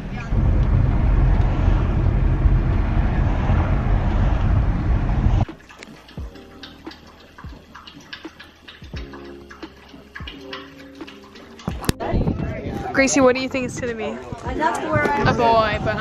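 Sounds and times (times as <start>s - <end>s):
road and engine rumble: 0.0s - 9.1s.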